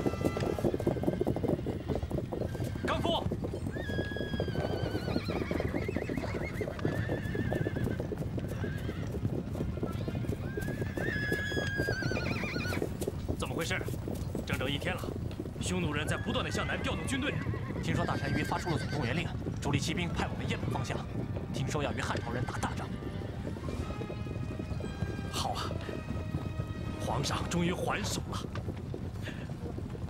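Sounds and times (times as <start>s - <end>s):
horse whinnying: 0.0s - 13.6s, 14.6s - 28.6s
hooves of galloping horses: 0.0s - 30.0s.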